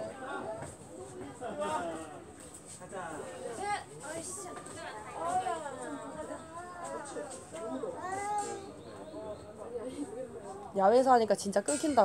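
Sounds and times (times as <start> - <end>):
faint background voices talking: 0.0 - 12.0.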